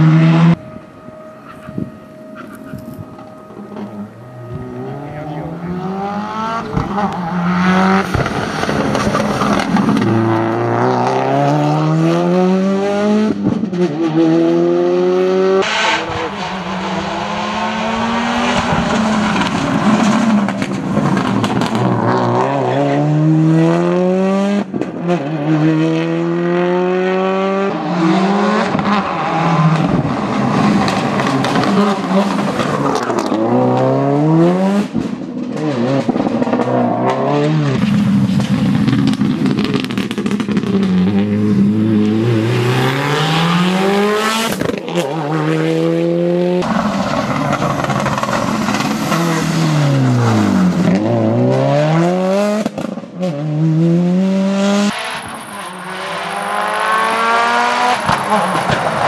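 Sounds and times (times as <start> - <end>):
rally car engine at full throttle: 0.0 - 59.0.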